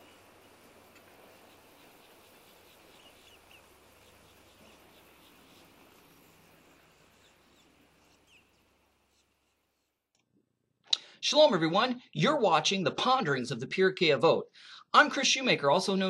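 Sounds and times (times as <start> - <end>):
faint steady hiss: 0.0 - 10.2.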